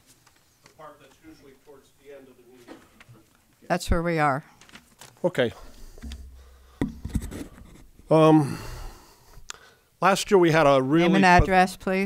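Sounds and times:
soft knocks: 5.9 - 7.5.

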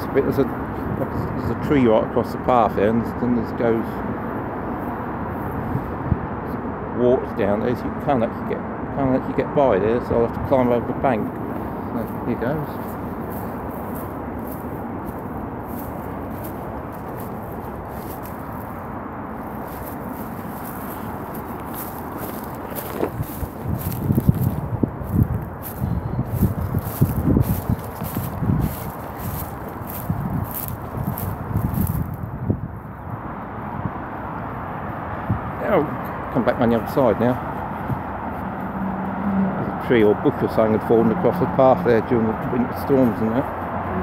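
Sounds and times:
traffic hum: 0.0 - 44.0
footsteps through dry brush: 10.6 - 32.6, 36.8 - 39.2
twigs crackling against clothing: 11.2 - 32.4.

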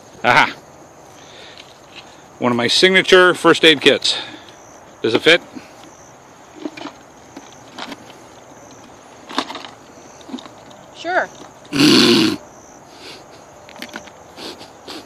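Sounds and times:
loud breathy burst: 11.7 - 13.4.

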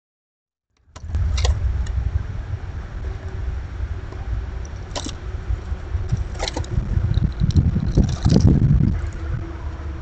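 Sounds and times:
low rumbling on microphone: 0.8 - 10.0.

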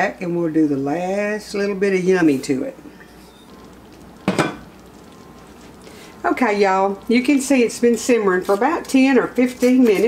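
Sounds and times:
low room noise: 0.0 - 10.0.

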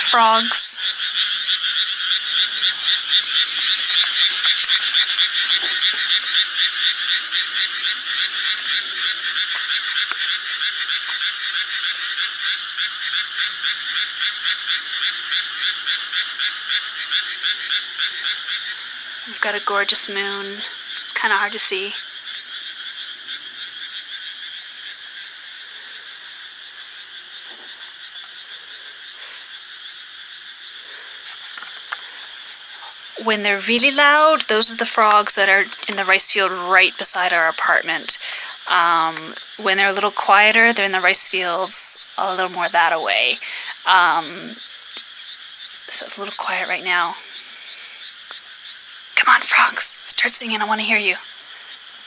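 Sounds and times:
frogs croaking: 0.0 - 52.0.

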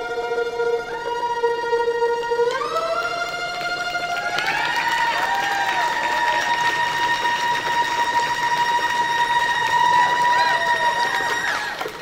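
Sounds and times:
solo violin: 0.0 - 4.4
audience applauding and cheering: 2.5 - 12.0
whistles from audience: 4.2 - 12.0.

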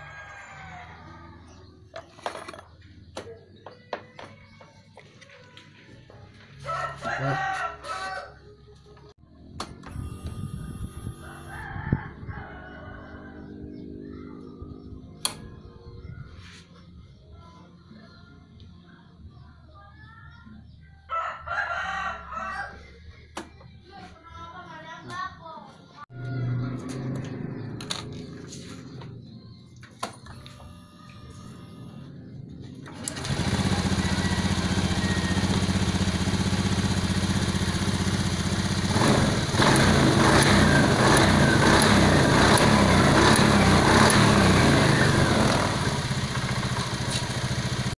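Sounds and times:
animal crowing: 6.6 - 8.4
scooter engine starting: 9.4 - 11.6, 31.3 - 47.9
scooter engine revving: 13.1 - 15.3, 31.8 - 47.9
scooter engine idling: 32.7 - 47.9.

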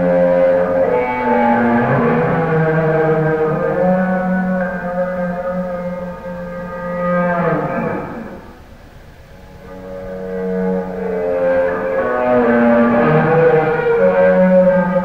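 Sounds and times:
bowed electric guitar notes: 0.0 - 8.6, 9.4 - 15.0.

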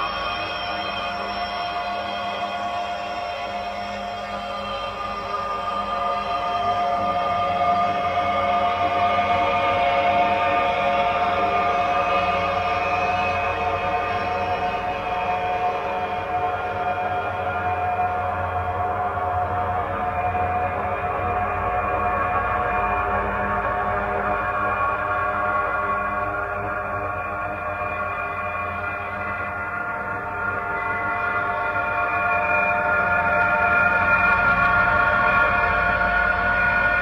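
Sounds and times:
ambient drone music: 0.0 - 37.0.

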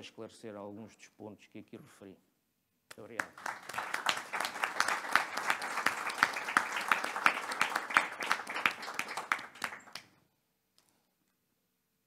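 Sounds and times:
audience applauding: 3.2 - 10.1.

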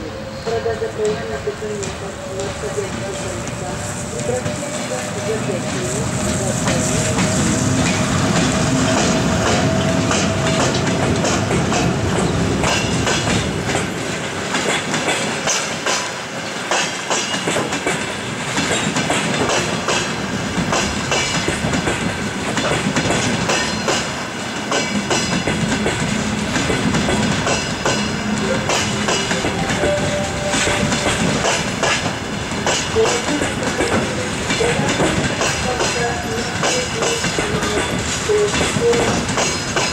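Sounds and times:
electric locomotive passing: 0.0 - 39.9
train wheels clattering over rail joints: 1.0 - 29.9, 30.5 - 39.9.

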